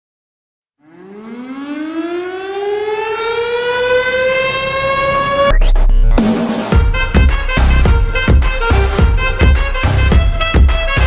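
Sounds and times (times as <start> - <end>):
siren-like tone winding up: 0.8 - 6.3.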